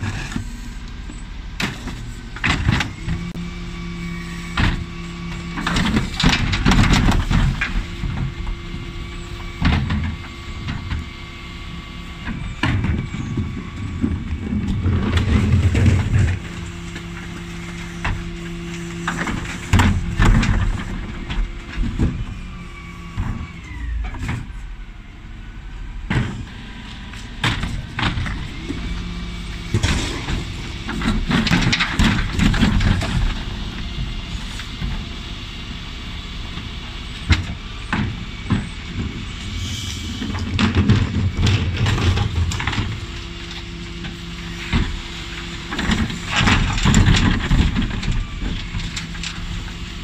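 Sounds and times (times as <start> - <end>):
hydraulics humming: 0.0 - 50.0.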